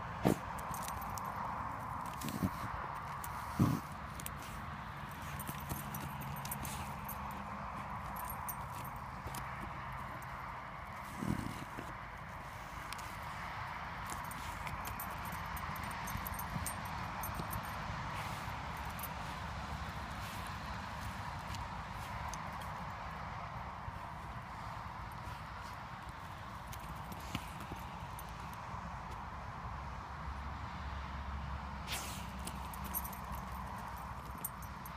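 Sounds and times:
dog paws scratching soil: 0:00.1 - 0:28.4, 0:31.9 - 0:34.9
dog scratching in soil: 0:02.0 - 0:09.3.

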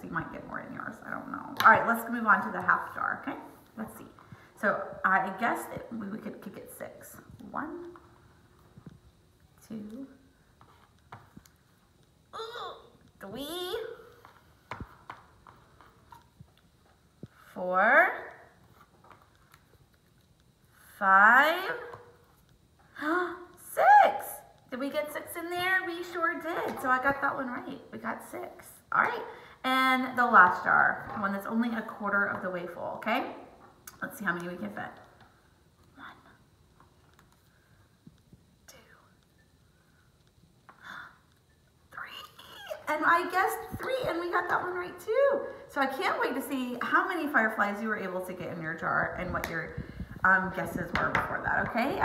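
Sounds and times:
faint whispering: 0:38.7 - 0:39.2.

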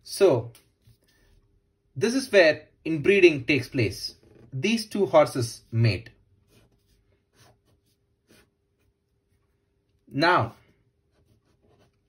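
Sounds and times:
pen scratching on paper: 0:06.4 - 0:09.5, 0:11.1 - 0:12.0.

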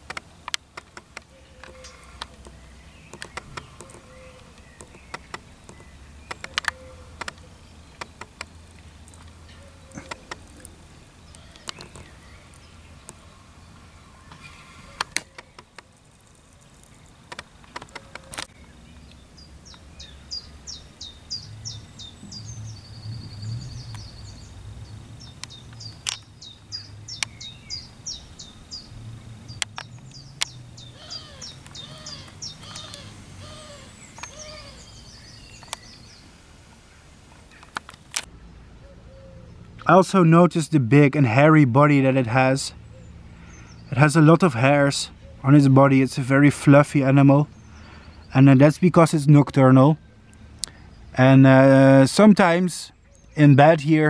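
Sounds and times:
sharp clicks: 0:00.0 - 0:13.2, 0:14.3 - 0:19.8, 0:25.3 - 0:26.3, 0:27.1 - 0:27.5, 0:29.5 - 0:33.1, 0:34.1 - 0:34.6, 0:35.6 - 0:36.0, 0:37.4 - 0:38.3
songbird singing with trill: 0:00.0 - 0:37.8, 0:46.9 - 0:54.0.

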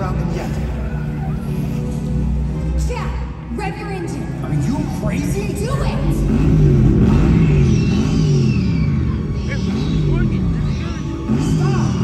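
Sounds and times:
loud soundtrack music: 0:00.0 - 0:12.0
low rumbling rising and falling: 0:00.0 - 0:12.0.

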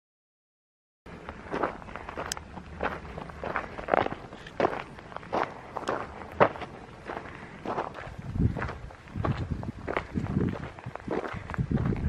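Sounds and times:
footsteps crunching on gravel: 0:01.1 - 0:12.0.

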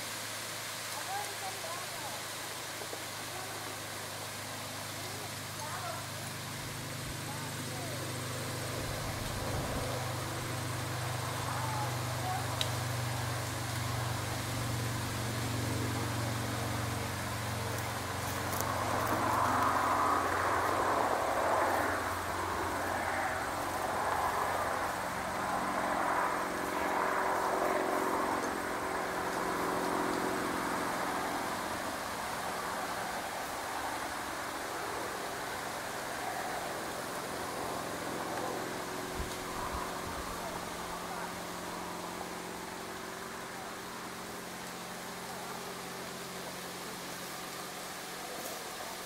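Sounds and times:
low engine hum: 0:03.3 - 0:49.0
vehicle passing: 0:05.1 - 0:48.4.

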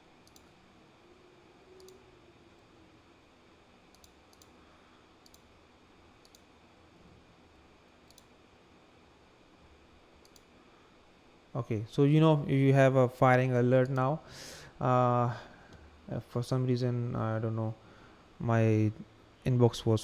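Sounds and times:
computer mouse clicks: 0:00.2 - 0:00.5, 0:01.8 - 0:02.0, 0:03.9 - 0:04.5, 0:05.2 - 0:05.5, 0:06.2 - 0:06.5, 0:08.0 - 0:08.3, 0:10.2 - 0:10.5.

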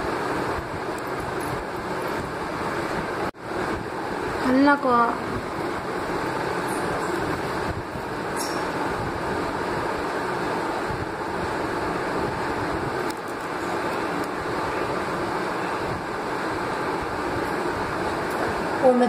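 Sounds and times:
steady rumbling background noise: 0:00.0 - 0:19.0.

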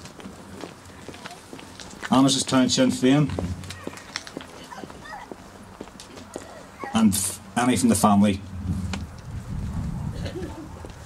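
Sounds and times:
footsteps on paving: 0:00.0 - 0:07.5, 0:08.8 - 0:11.0
faint voices: 0:00.9 - 0:07.4.

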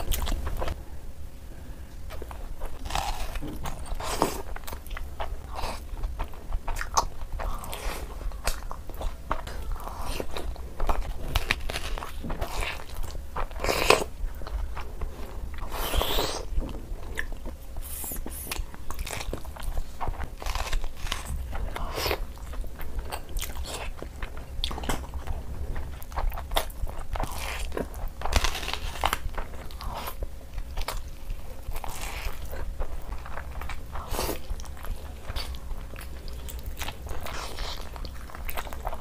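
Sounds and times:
steady low hum: 0:00.0 - 0:39.0
crunching raw onion: 0:17.2 - 0:25.3, 0:26.0 - 0:39.0.

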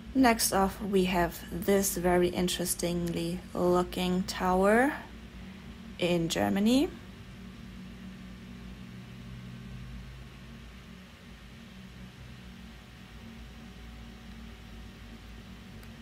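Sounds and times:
low hum with hiss: 0:00.0 - 0:16.0.

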